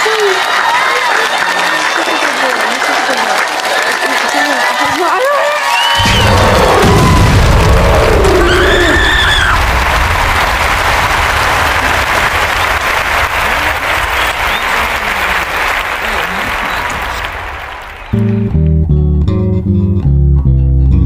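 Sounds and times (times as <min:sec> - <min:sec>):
crowd applauding and cheering: 0:00.0 - 0:19.1
person whooping: 0:05.3 - 0:09.6.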